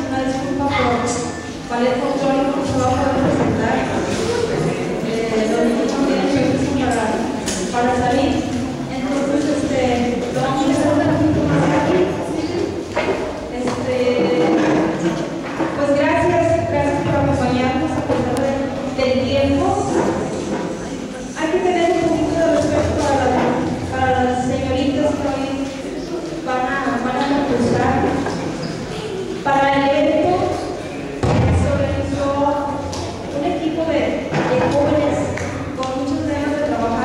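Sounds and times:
woman speaking over pa system: 0:00.0 - 0:20.6, 0:21.2 - 0:28.3, 0:29.4 - 0:37.0.

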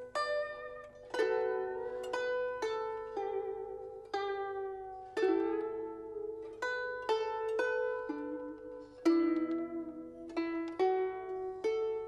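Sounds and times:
zither plucked melody: 0:00.0 - 0:12.0.

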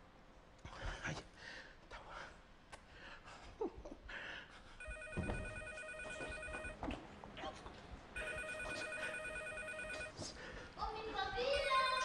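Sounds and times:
desk telephone ringing: 0:04.8 - 0:06.8, 0:08.2 - 0:10.2
faint knocks and shuffles: 0:04.8 - 0:08.1.

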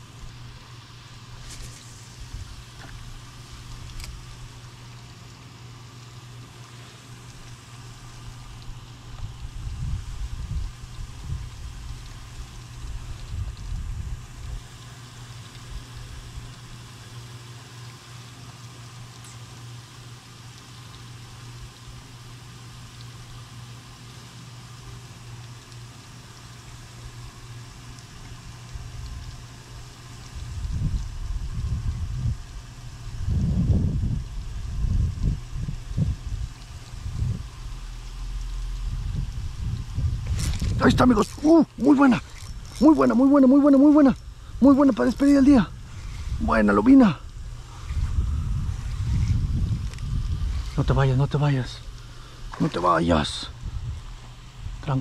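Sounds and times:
low hum: 0:00.0 - 0:24.0, 0:24.6 - 0:55.0
wind buffeting microphone: 0:08.7 - 0:14.6, 0:30.3 - 0:43.2, 0:44.0 - 0:51.9, 0:53.2 - 0:55.0.

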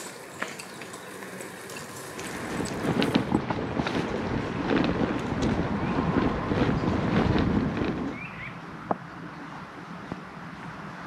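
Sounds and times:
bicycle tyres on leafy dirt: 0:00.0 - 0:11.0
wind on microphone: 0:02.2 - 0:11.0.

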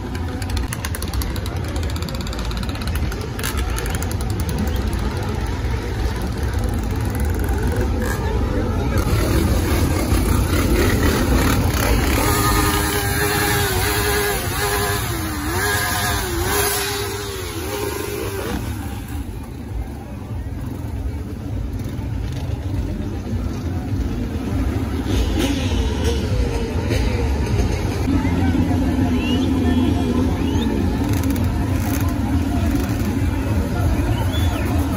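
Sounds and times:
atv and motorcycle engines: 0:00.0 - 0:34.9
crowd voices: 0:00.0 - 0:34.9.

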